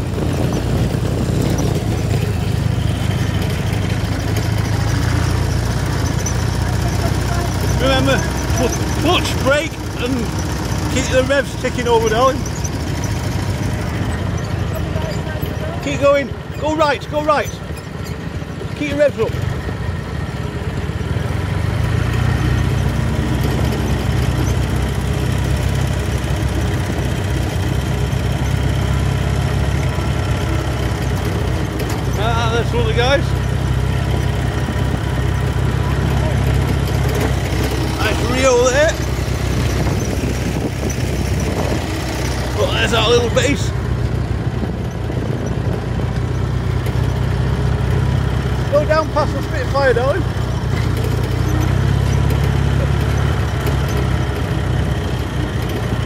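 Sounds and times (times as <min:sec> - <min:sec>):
motorcycle engine at low revs: 0:00.0 - 0:56.0
noisy rumble: 0:00.0 - 0:56.0.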